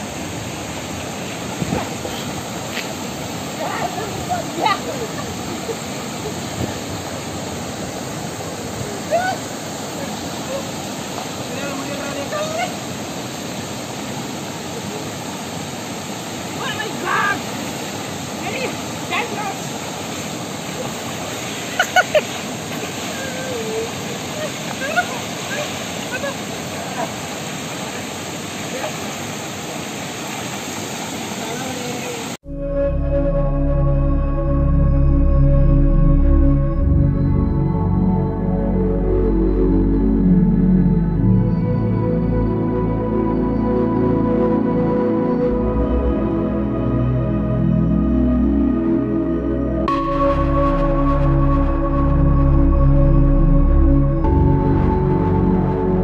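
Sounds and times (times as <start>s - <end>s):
water rushing over rocks: 0.0s - 32.4s
music: 32.5s - 56.0s.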